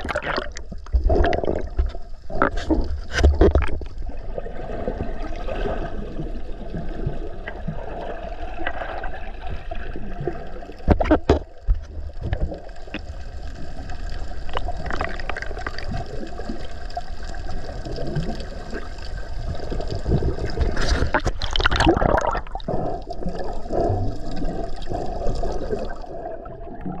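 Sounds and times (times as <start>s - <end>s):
water gurgling: 0.0s - 27.0s.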